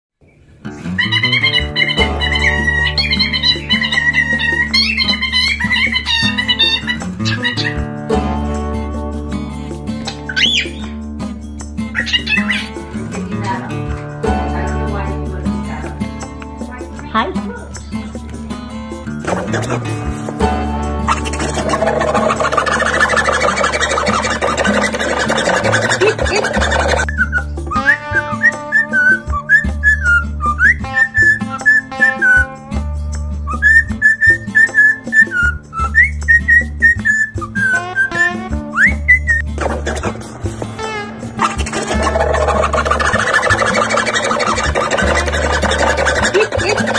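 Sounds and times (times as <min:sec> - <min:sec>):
acoustic guitar music: 0:00.4 - 0:46.9
cockatiel whistled call: 0:01.0 - 0:07.8, 0:10.1 - 0:10.9, 0:12.0 - 0:12.8, 0:21.1 - 0:32.5, 0:33.5 - 0:39.5
cockatiel chattering: 0:01.0 - 0:07.9, 0:10.0 - 0:10.9, 0:11.9 - 0:13.1, 0:21.0 - 0:27.5, 0:41.4 - 0:46.9.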